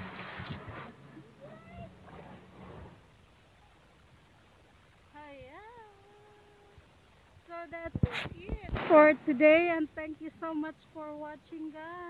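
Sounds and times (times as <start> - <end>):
drawn-out voice-like call: 1.3 - 2.4.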